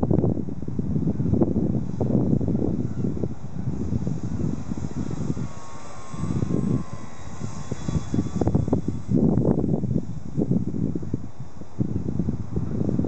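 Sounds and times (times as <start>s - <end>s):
distant airplane drone: 0.0s - 13.0s
wind buffeting microphone: 0.0s - 13.0s.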